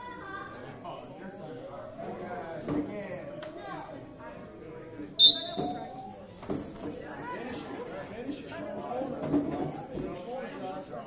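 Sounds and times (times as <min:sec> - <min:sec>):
spectators murmuring and chattering: 0:00.0 - 0:11.0
sharp high-pitched squeal: 0:05.2 - 0:05.9.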